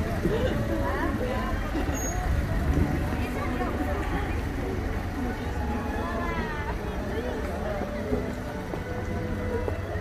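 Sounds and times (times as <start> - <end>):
car engine rumble: 0.0 - 10.0
people talking: 0.0 - 10.0.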